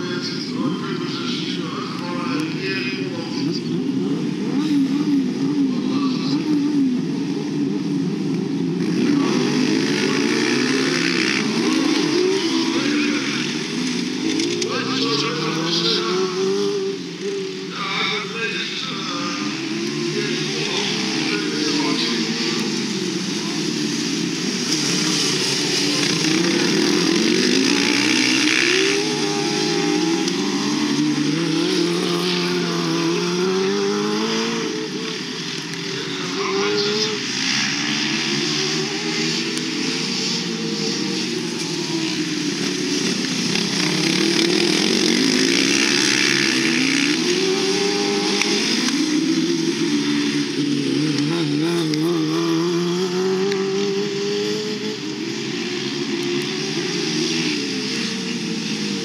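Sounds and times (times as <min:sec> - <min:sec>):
lawn mower engines racing: 0:00.0 - 0:59.0.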